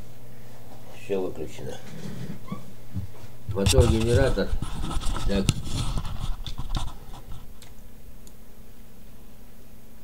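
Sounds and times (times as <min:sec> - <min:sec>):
pen scratching on paper: 0:03.6 - 0:07.6.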